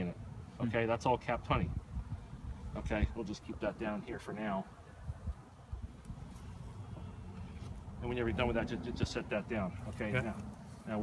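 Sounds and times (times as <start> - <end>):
wind buffeting microphone: 1.2 - 10.3.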